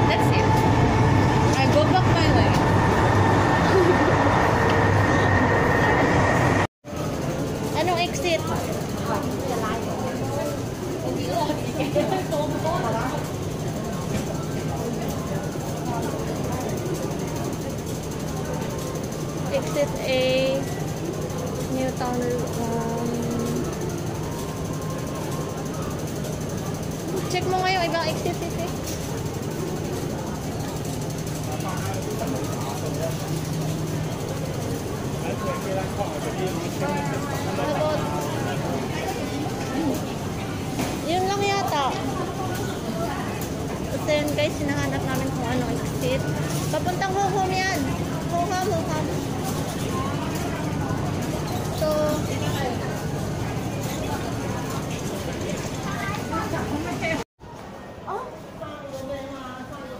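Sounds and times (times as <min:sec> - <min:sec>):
high steady whine: 0:00.0 - 0:06.7
train rumble: 0:00.0 - 0:06.7
metro station hum: 0:00.0 - 0:59.9.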